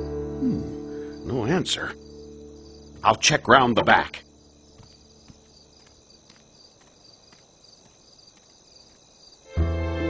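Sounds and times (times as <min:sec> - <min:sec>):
crickets chirping: 0:00.0 - 0:09.8.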